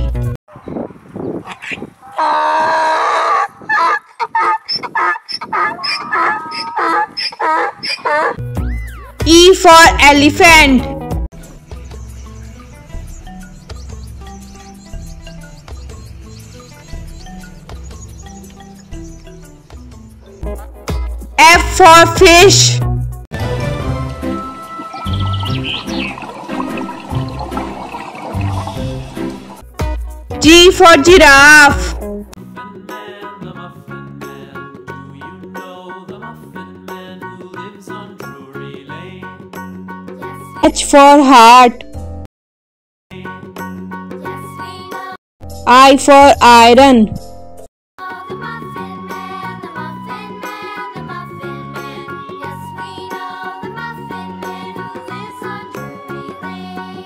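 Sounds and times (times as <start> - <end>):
background music: 0.0 - 0.4, 7.8 - 42.2, 43.1 - 57.0
donkey braying: 1.5 - 9.2, 24.4 - 29.6
rushing bubbling water: 24.5 - 29.6.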